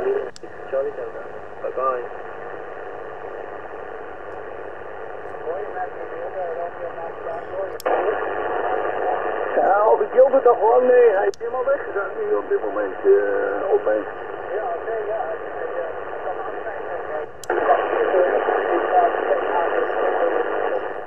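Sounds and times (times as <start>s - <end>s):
radio band-noise hiss: 0.0s - 21.0s
distant radio voice talking: 5.3s - 21.0s
antenna switch click: 7.8s - 8.0s.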